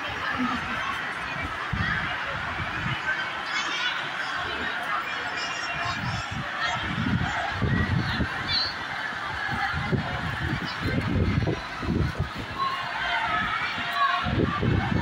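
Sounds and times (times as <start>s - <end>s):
storm wind gusting on microphone: 0.0s - 3.2s, 5.8s - 15.0s
hubbub of many voices: 0.0s - 15.0s.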